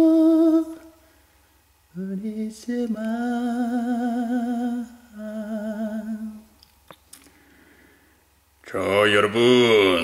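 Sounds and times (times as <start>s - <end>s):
person singing long notes: 0.0s - 1.0s.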